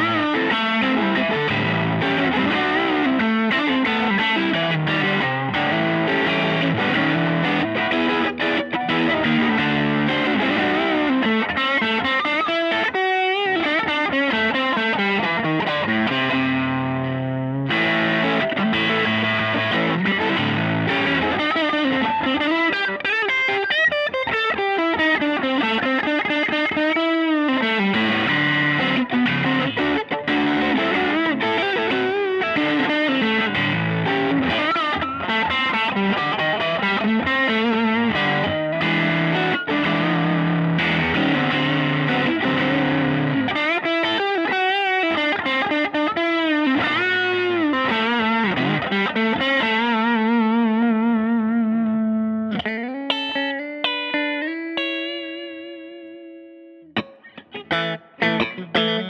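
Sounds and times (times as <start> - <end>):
overdriven electric guitar lead: 0.0 - 59.0.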